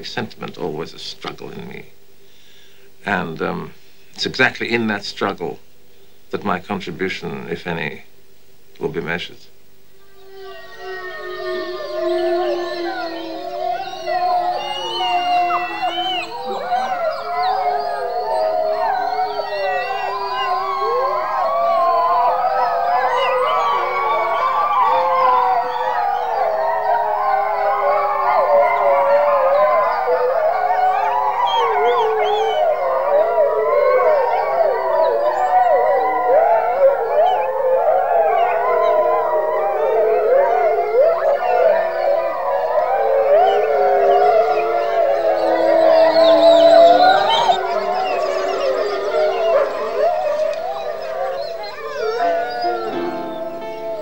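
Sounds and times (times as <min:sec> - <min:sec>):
wolves howling: 0:09.9 - 0:54.0.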